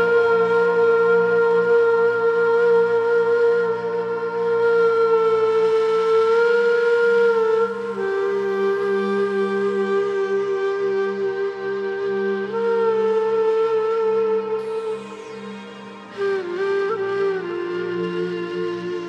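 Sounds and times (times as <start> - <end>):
breathy cane flute note: 6.3 - 19.0.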